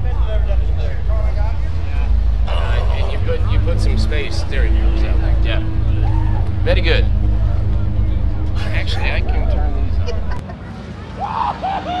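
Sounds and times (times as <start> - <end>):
car engine idling: 0.0 - 10.5.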